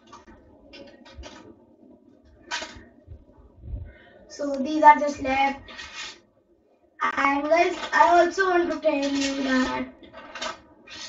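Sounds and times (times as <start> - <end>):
plastic sticks and marbles clicking: 0.0 - 1.5, 2.4 - 3.0, 7.4 - 11.0.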